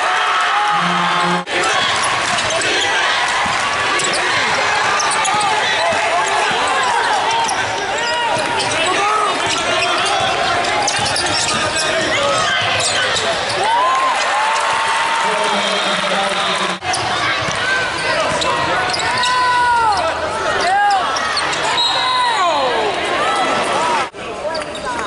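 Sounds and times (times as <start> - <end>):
hubbub of voices: 0.0 - 25.0
sneakers squeaking: 1.2 - 13.8, 16.8 - 22.4
basketball bouncing: 1.8 - 7.6.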